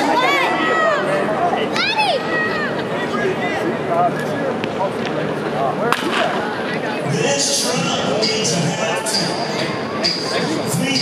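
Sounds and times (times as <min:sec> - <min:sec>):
people talking: 0:00.0 - 0:11.0
baseball bat hitting ball: 0:05.9 - 0:06.4.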